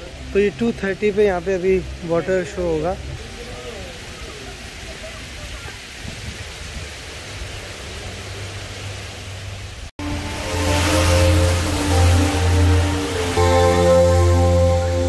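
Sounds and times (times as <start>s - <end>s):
water cascading down walls: 0.0s - 15.0s
music with deep bass: 10.0s - 15.0s.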